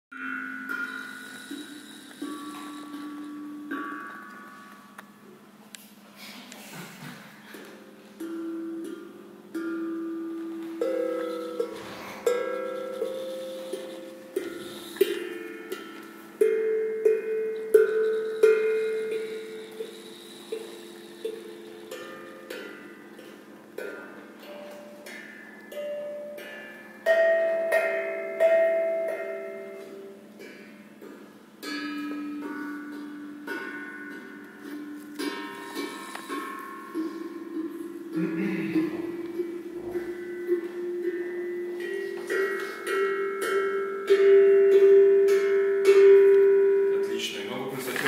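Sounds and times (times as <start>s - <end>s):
steel tongue drums played: 0.1s - 6.0s, 7.2s - 48.0s.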